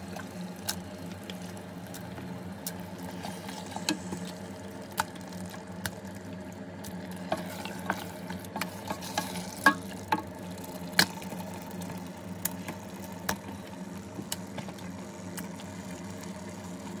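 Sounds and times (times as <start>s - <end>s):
low steady hum: 0.0s - 17.0s
meat sizzling in oil: 0.0s - 17.0s.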